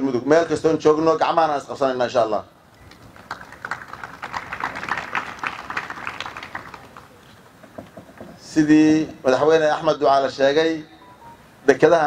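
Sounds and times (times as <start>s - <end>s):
audience applauding: 2.8s - 7.2s.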